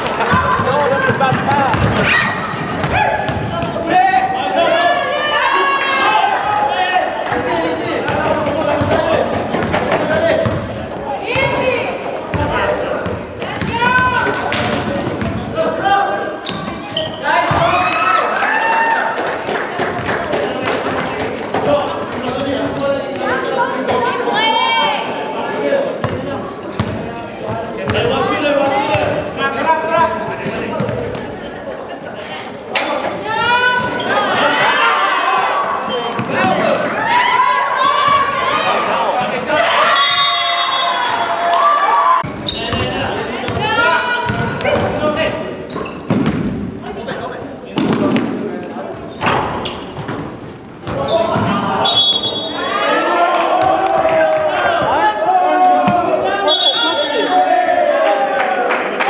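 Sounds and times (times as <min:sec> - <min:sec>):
players shouting and chatting: 0:00.0 - 0:59.0
basketball bouncing on wooden floor: 0:00.3 - 0:02.1, 0:08.1 - 0:10.7, 0:46.0 - 0:46.6
basketball bouncing on hardwood: 0:01.1 - 0:02.0, 0:46.1 - 0:46.5.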